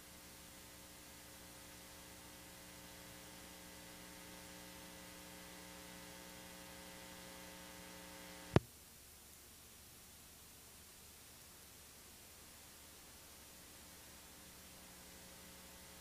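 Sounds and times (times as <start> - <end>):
electrical mains hum: 0.0 - 16.0
faint hiss: 0.0 - 16.0.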